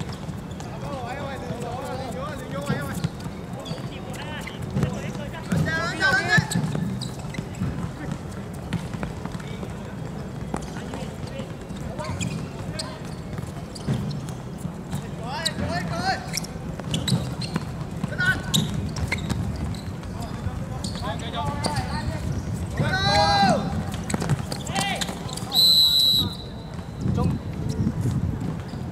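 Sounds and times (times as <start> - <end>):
players shouting: 22.7 - 25.6.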